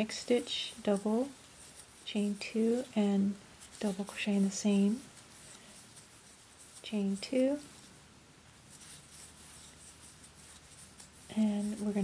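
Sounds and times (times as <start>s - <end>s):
yarn rubbing on crochet hook: 0.0s - 8.0s, 8.6s - 12.0s.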